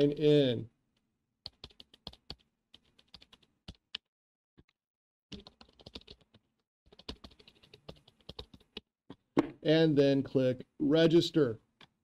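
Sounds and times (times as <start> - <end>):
computer keyboard typing: 1.5 - 4.7, 5.3 - 9.2.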